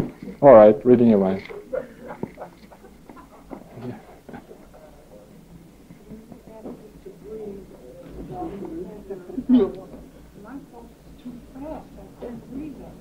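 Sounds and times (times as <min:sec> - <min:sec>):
faint indistinct voices: 0:00.0 - 0:13.0.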